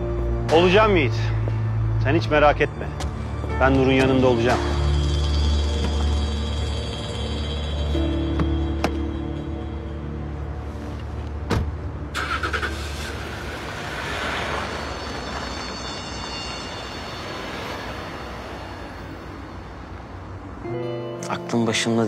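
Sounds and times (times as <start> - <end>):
suv engine starting and driving: 0.0 - 22.0
car door shutting: 11.4 - 12.3.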